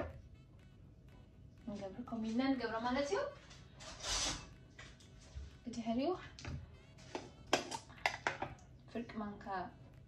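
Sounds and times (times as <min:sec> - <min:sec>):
background music: 0:00.0 - 0:10.0
voice: 0:01.6 - 0:03.4, 0:08.9 - 0:09.8.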